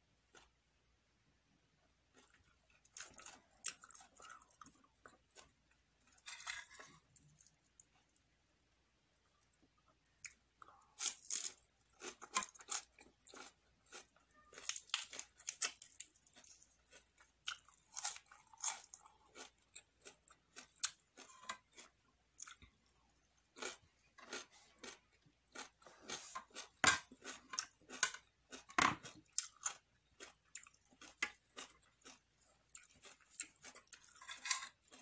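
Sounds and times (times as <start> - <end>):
chewing crisp vegetables: 0.3 - 0.6, 2.0 - 8.3, 9.2 - 35.0.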